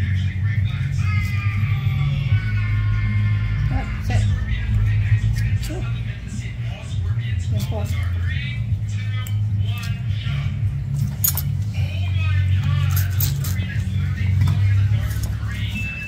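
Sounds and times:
background voices: 0.0 - 16.0
low hum: 0.0 - 16.0
music: 0.0 - 16.0.

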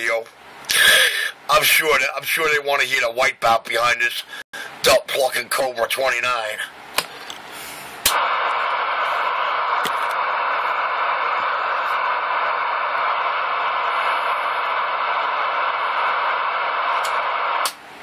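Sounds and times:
radio static hiss: 0.0 - 6.8, 7.7 - 18.0.

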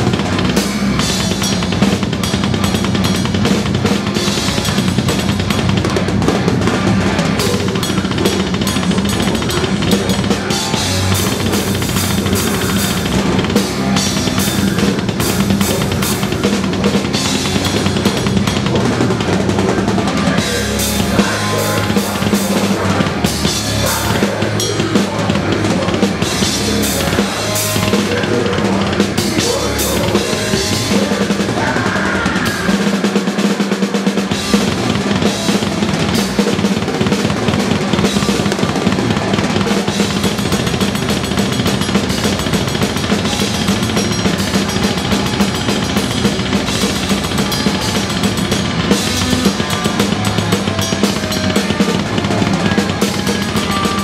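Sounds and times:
amplified band instruments: 0.0 - 54.0
drum kit played fast: 0.0 - 54.0.

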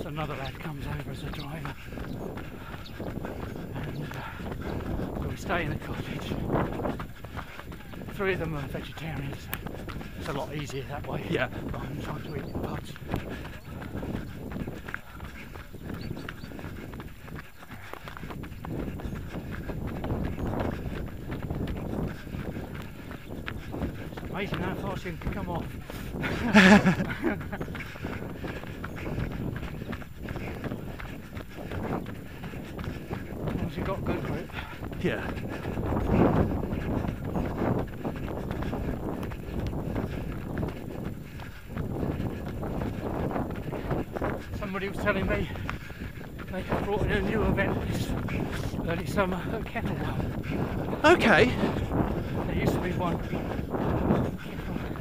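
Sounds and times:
runners' footfalls: 0.0 - 55.0
wind rumbling on microphone: 0.0 - 55.0.

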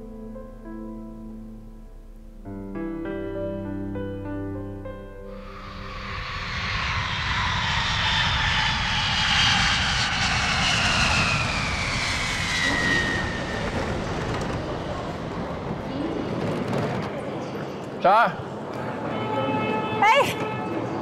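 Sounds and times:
jet engines roaring: 5.3 - 17.4.

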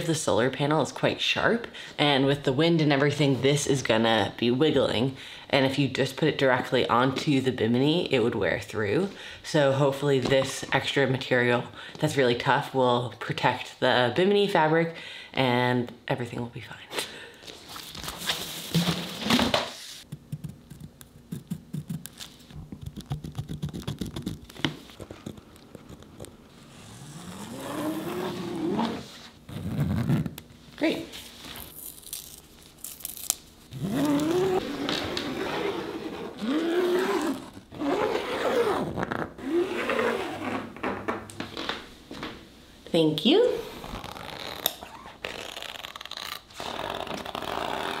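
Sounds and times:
heavy fabric scraping and rustling: 26.8 - 30.2.

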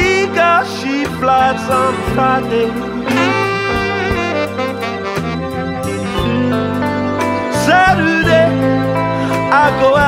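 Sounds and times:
person singing: 0.0 - 4.8, 5.8 - 10.0
slow blues band: 0.0 - 10.0.

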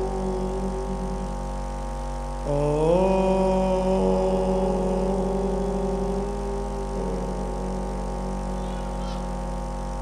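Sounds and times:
group chanting om: 0.0 - 9.7.

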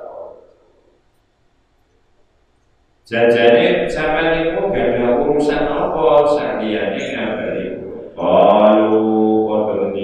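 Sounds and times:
man speaking through a pa: 3.1 - 10.0.

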